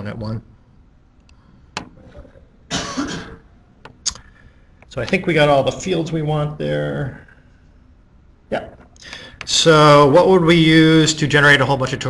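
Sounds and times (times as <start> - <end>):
person coughing: 2.2 - 3.5.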